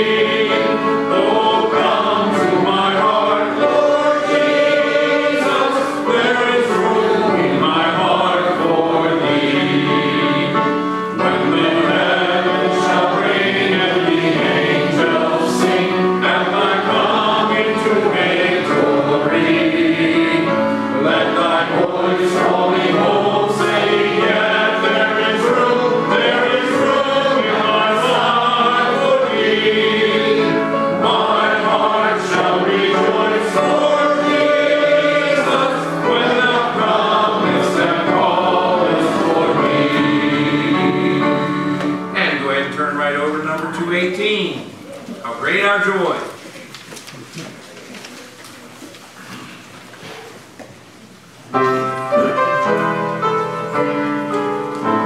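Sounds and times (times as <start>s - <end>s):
voices singing a hymn: 0.0s - 43.5s
piano: 0.0s - 55.0s.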